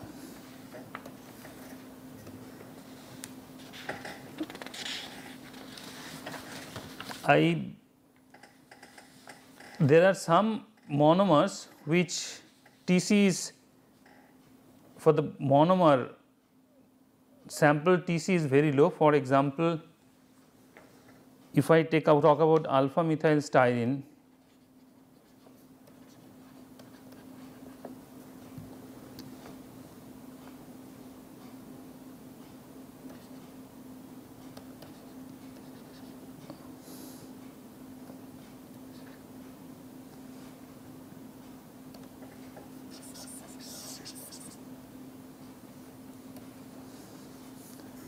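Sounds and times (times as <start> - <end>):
low electrical hum: 0.0 - 48.0
stylus scratching on tablet: 24.4 - 27.9, 34.7 - 36.2, 42.8 - 44.6.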